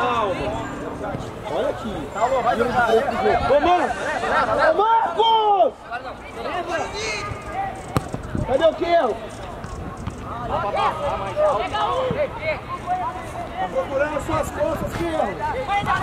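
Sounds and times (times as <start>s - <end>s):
people shouting outdoors: 0.0s - 9.5s, 10.3s - 16.0s
ball being kicked: 7.9s - 8.5s.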